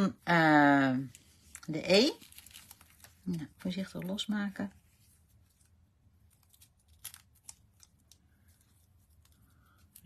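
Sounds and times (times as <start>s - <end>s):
cardstock clicking and crackling: 6.4s - 10.0s.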